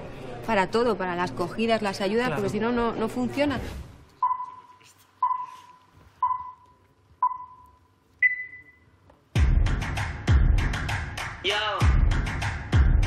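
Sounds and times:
electronic countdown beeps: 4.2 - 8.8
dance music with strong beat: 9.4 - 13.0.

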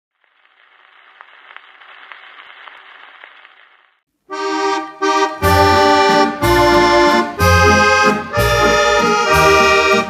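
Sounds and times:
record surface hiss: 0.1 - 4.3
record clicks: 0.4 - 3.9.

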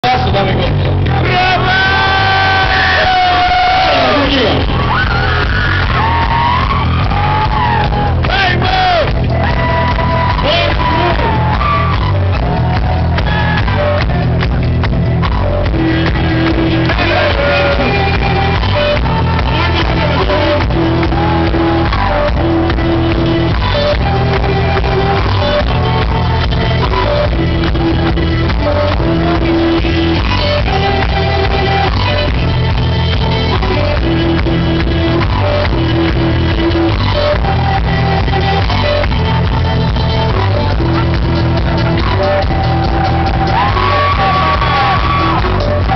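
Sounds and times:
folk-rock band playing loud: 0.0 - 45.9
people shouting and whooping: 1.1 - 14.8, 41.7 - 45.9.

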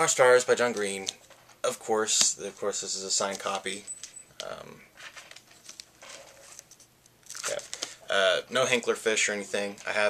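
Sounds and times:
book pages rustling and crackling: 5.0 - 8.0.

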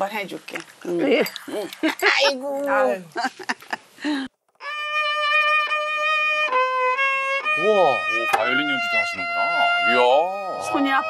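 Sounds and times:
violin long bowed note: 4.6 - 11.0.

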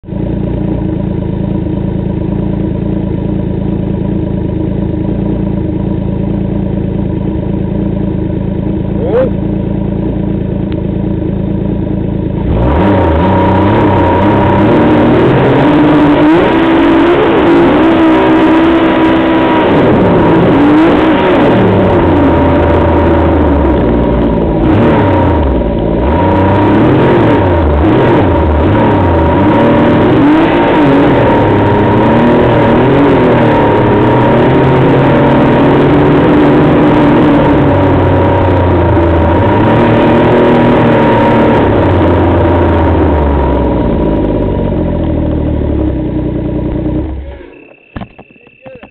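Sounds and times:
steady whine: 0.0 - 48.9
snowmobile engine revving: 12.4 - 44.0.

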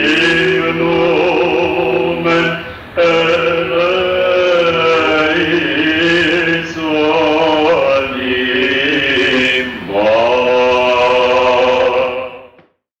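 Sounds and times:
man singing chant: 0.0 - 12.8.

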